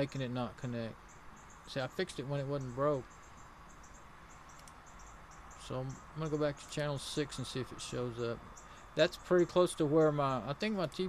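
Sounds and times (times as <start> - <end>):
faint cricket chirping: 0.0 - 11.0.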